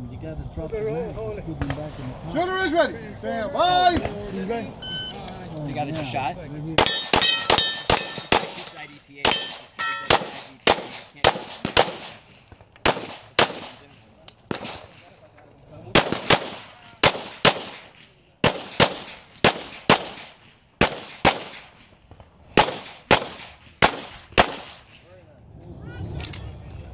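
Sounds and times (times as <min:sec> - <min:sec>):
pistol shots with echo: 0:06.8 - 0:15.1, 0:15.9 - 0:21.9, 0:22.5 - 0:25.0.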